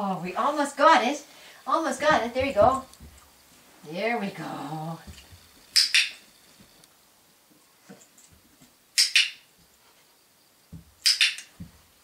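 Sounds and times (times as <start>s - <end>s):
soft low thuds: 2.0s - 3.2s
sharp double clicks: 5.8s - 6.2s, 9.0s - 9.4s, 11.0s - 11.5s.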